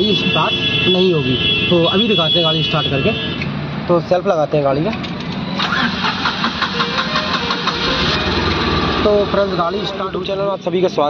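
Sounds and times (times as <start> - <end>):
car engine starting: 4.8 - 10.5
starter motor cranking engine: 5.6 - 9.9.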